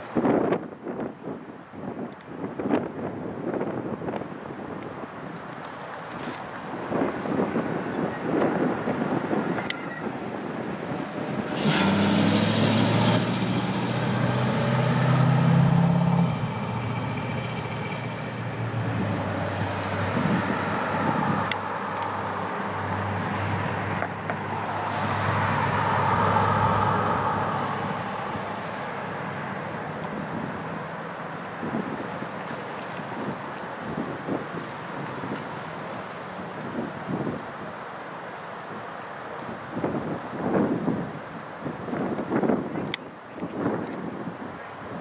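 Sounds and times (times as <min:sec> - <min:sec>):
road noise: 0:00.0 - 0:45.0
car driving past: 0:11.1 - 0:31.0.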